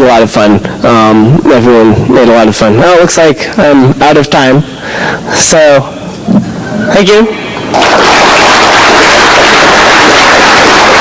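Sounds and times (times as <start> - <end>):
audience applauding: 7.7 - 11.0.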